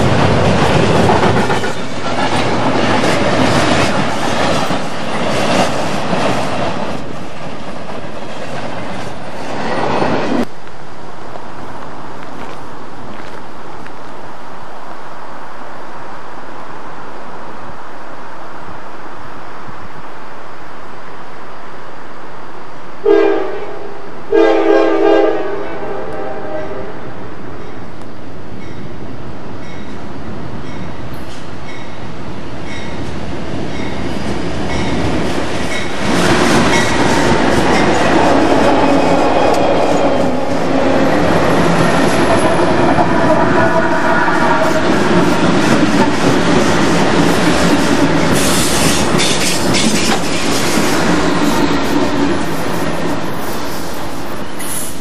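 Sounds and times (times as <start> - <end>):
train wheels clacking on rails: 0.0 - 10.5, 32.6 - 53.9
locomotive air horn blasts: 23.0 - 27.0.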